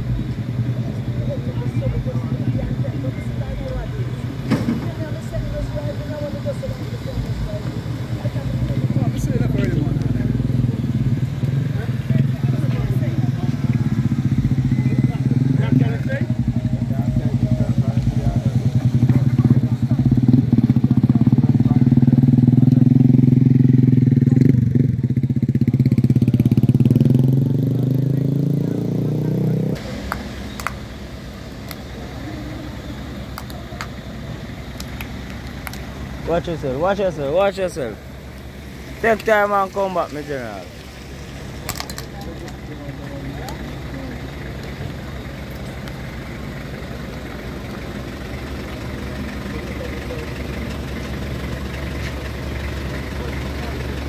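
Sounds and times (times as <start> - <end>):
people's voices: 0.0 - 54.0
vehicle engine humming: 0.0 - 54.0.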